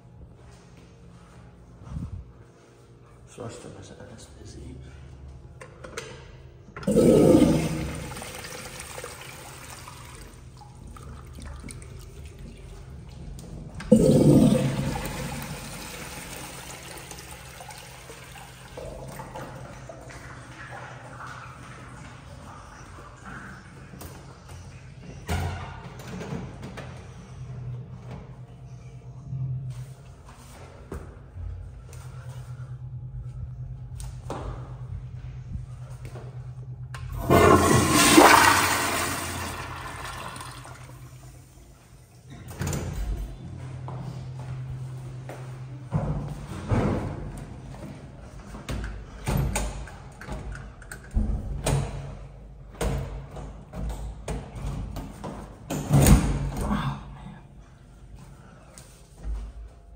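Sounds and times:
steady low hum: 0.0 - 17.7, 18.4 - 59.9
toilet flushing: 6.8 - 23.8, 37.1 - 41.5.

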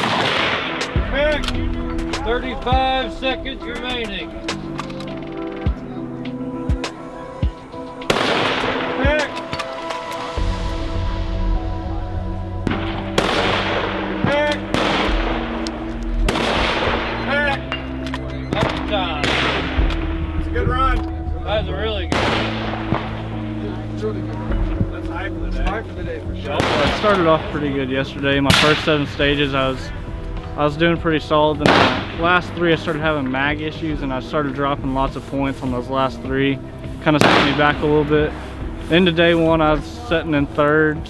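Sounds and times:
rifle shots with echo: 0.0 - 1.0, 8.1 - 9.0, 12.7 - 15.6, 16.3 - 17.2, 19.2 - 19.8, 22.1 - 23.3, 26.5 - 27.4, 28.5 - 29.0, 31.6 - 32.2, 37.2 - 37.9
background music with bass: 0.0 - 41.0.

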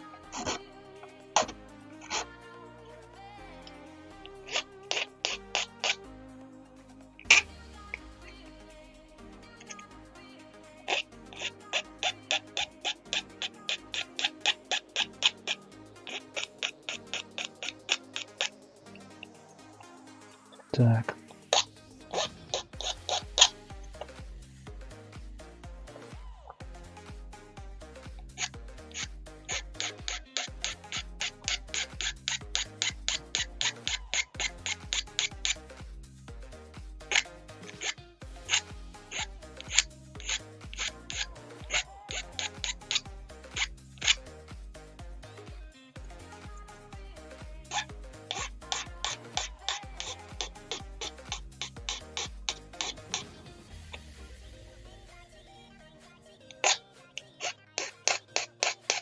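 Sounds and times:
background music with a beat: 0.0 - 59.0
file scraping plastic: 4.5 - 6.0, 10.9 - 18.6, 21.5 - 23.5, 28.4 - 35.6, 37.1 - 44.2, 47.7 - 53.4, 56.5 - 59.0.

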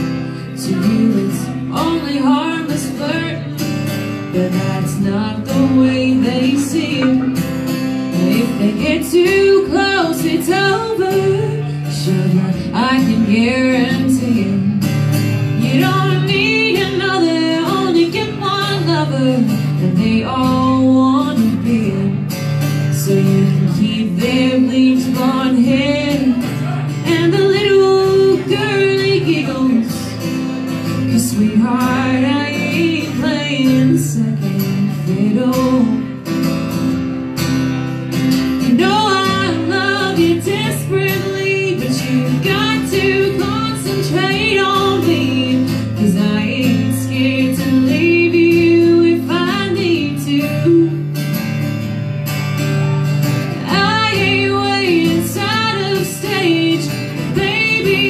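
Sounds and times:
woman singing: 0.0 - 37.0, 38.2 - 51.9, 52.6 - 58.0
acoustic guitars strummed: 0.0 - 58.0.

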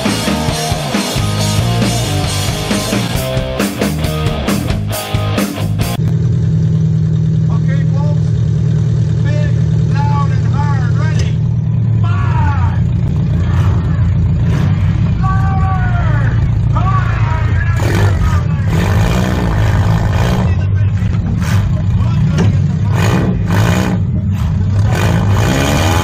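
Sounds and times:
car engine running at low revs: 0.0 - 26.0.

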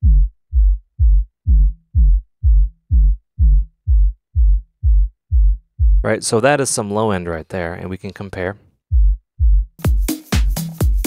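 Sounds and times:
deep kick drum thumps: 0.0 - 6.1, 8.9 - 11.0.

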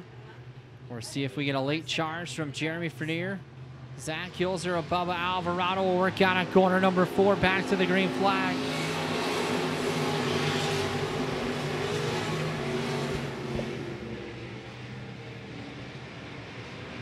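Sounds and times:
stock car engines accelerating: 0.0 - 17.0.

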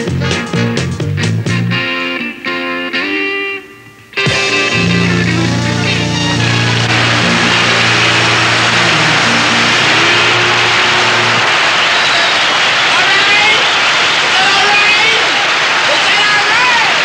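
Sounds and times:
rock band bass line: 0.0 - 2.1, 4.2 - 11.6
audience applause and cheering: 4.4 - 17.0.

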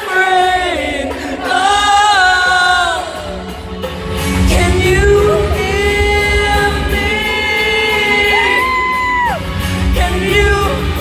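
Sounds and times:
woman singing live: 0.0 - 3.5, 4.4 - 11.0
rock band playing: 0.0 - 11.0.

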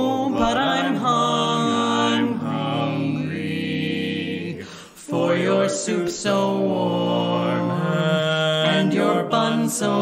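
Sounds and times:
quartet singing in harmony: 0.0 - 10.0.

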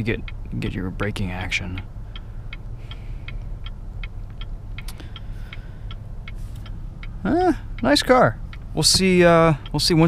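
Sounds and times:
car engine idling: 0.0 - 10.0
turn signal clicking: 0.0 - 10.0.

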